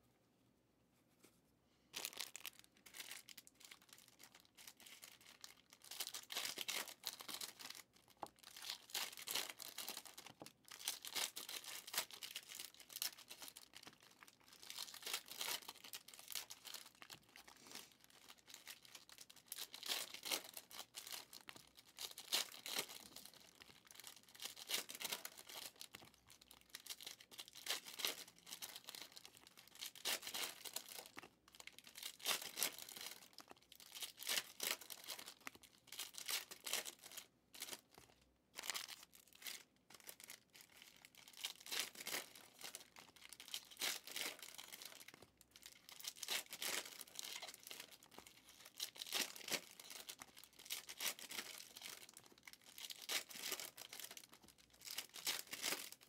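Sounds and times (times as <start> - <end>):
foil wrappers tearing and crinkling: 2.0 - 56.0.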